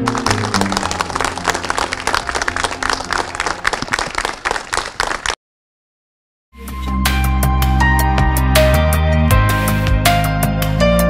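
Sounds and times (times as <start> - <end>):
crowd clapping: 0.0 - 5.4.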